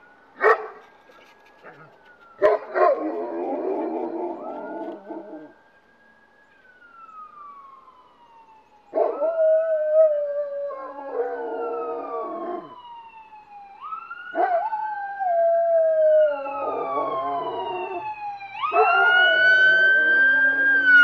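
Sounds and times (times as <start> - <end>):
police siren wailing: 0.0 - 21.0
dogs howling and barking: 0.4 - 5.5, 9.0 - 12.8, 14.3 - 18.0, 18.6 - 21.0.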